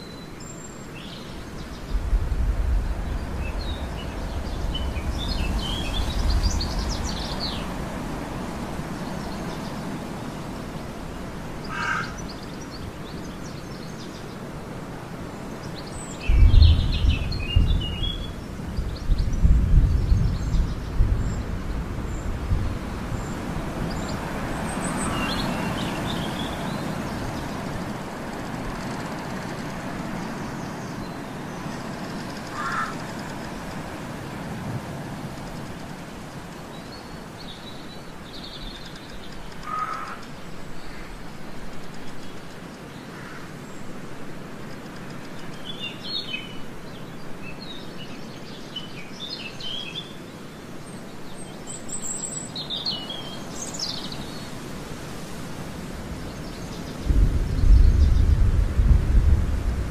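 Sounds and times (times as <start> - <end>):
birds chirping: 0.0 - 34.6, 35.2 - 58.5
steady background noise: 0.0 - 59.9
low rumble in gusts: 1.4 - 11.7, 15.9 - 36.4, 55.5 - 59.9.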